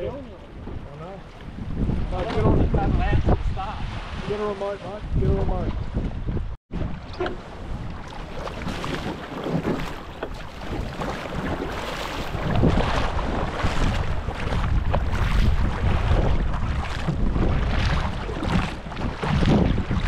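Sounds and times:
wind buffeting microphone: 0:00.0 - 0:20.0
paddle splashing water: 0:03.8 - 0:04.9, 0:06.7 - 0:20.0.

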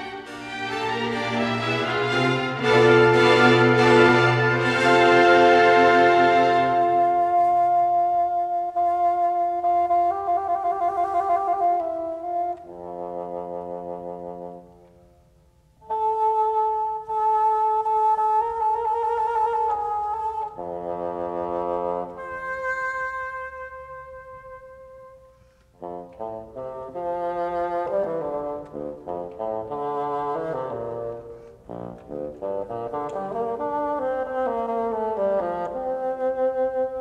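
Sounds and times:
bassoon playing: 0:00.0 - 0:14.7, 0:15.8 - 0:37.0.

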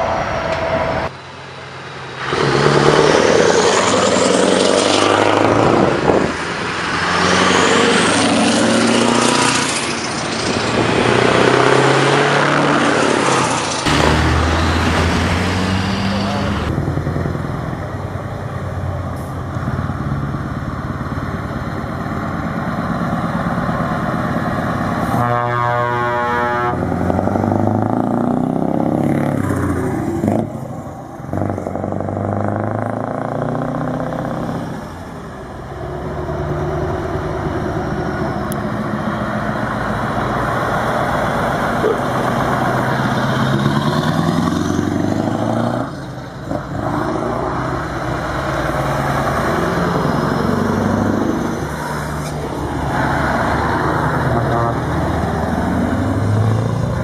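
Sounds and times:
truck engines accelerating: 0:00.0 - 0:57.0.

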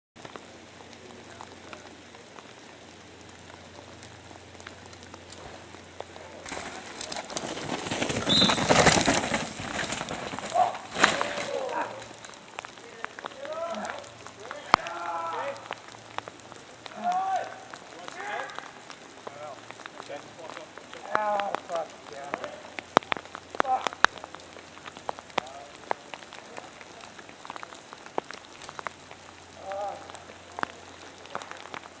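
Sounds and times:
bike tyres crunching and skidding on dirt: 0:00.2 - 0:32.0
bike rattling: 0:03.5 - 0:26.3
sharp ticks and taps: 0:22.2 - 0:26.2.

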